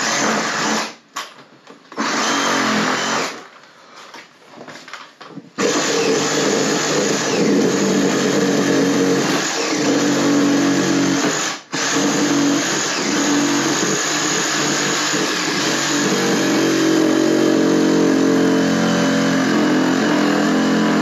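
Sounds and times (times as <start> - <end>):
power saw cutting wood: 2.0 - 3.4, 5.6 - 21.0.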